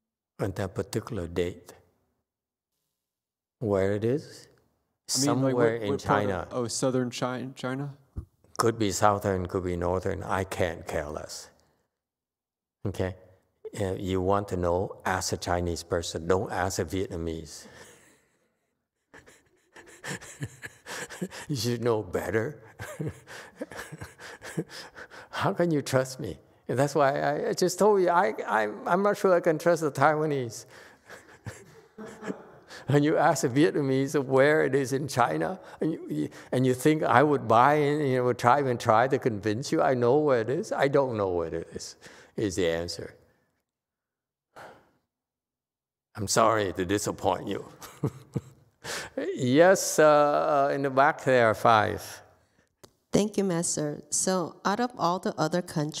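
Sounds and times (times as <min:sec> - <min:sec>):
man speaking: 0:00.4 - 0:01.8, 0:03.6 - 0:08.0, 0:08.6 - 0:11.6, 0:12.8 - 0:17.8, 0:20.9 - 0:23.1, 0:25.2 - 0:31.3, 0:32.0 - 0:43.2, 0:46.2 - 0:47.8, 0:49.0 - 0:52.3
man laughing breathily: 0:19.2 - 0:21.6, 0:22.7 - 0:25.4, 0:30.7 - 0:33.0, 0:47.8 - 0:49.2.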